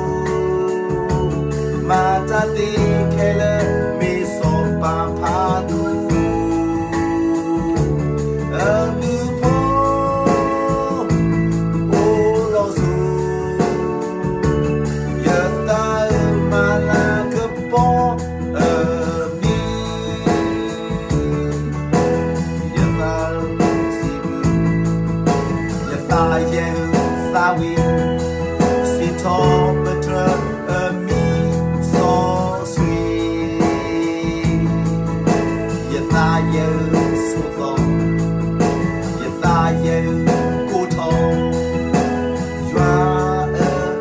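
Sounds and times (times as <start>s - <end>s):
instrumental accompaniment with bass: 0.0s - 44.0s
man singing: 0.0s - 44.0s.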